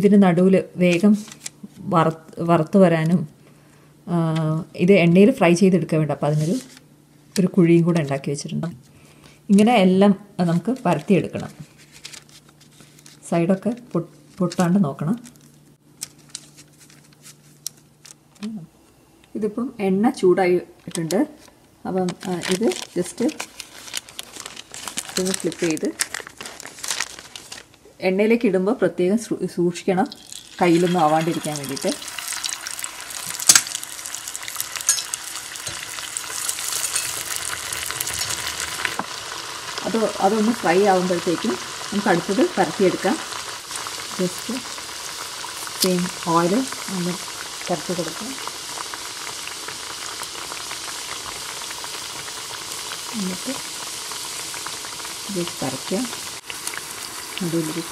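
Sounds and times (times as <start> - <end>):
wax paper crinkling: 0.9 - 1.8, 6.3 - 6.8, 10.6 - 18.5, 21.4 - 27.9
oil sizzling and crackling: 22.2 - 27.7, 30.1 - 57.9.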